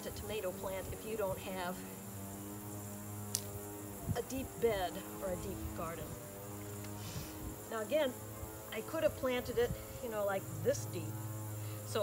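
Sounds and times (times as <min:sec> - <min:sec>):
steady low hum: 0:00.0 - 0:12.0
sharp click: 0:03.3 - 0:03.5.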